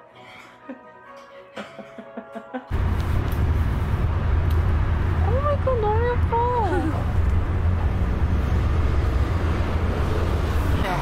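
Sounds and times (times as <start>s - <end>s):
vehicle rumbling over steel bridge: 2.8s - 11.0s.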